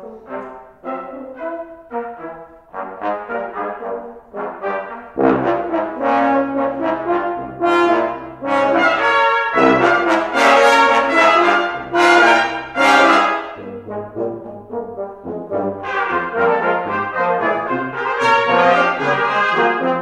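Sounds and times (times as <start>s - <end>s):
brass quintet playing: 0.0s - 20.0s
low tuba notes: 0.0s - 20.0s.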